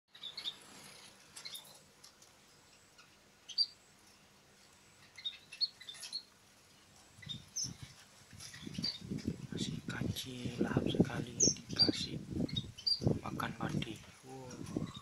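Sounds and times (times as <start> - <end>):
birds chirping: 0.1 - 15.0.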